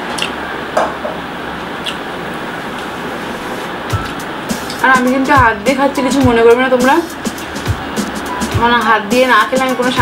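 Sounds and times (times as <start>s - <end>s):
noisy background hum: 0.0s - 10.0s
woman speaking: 4.8s - 7.2s, 8.5s - 10.0s.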